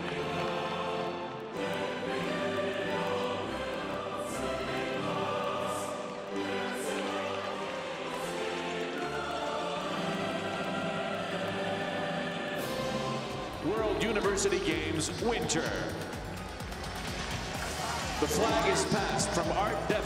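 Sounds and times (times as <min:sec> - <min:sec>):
choir singing with orchestra: 0:00.0 - 0:14.5.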